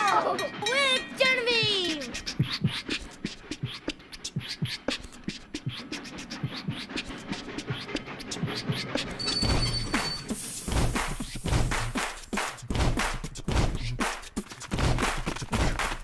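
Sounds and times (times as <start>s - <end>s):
beatboxing drum sounds: 0.4s - 16.0s.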